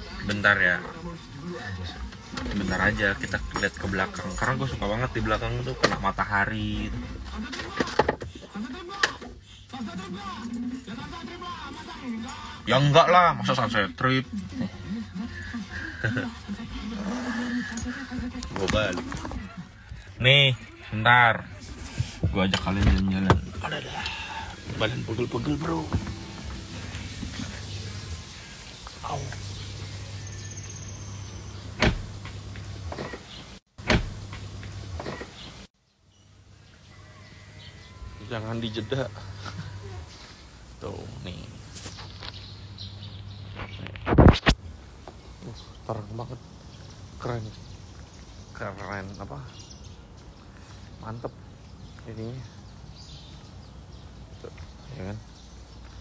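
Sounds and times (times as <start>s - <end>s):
man speaking indistinctly: 22.2s - 27.9s.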